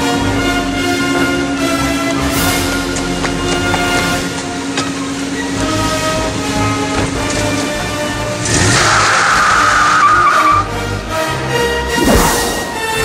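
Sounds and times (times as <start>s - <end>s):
background music: 0.0s - 13.0s
tire squeal: 8.4s - 10.9s.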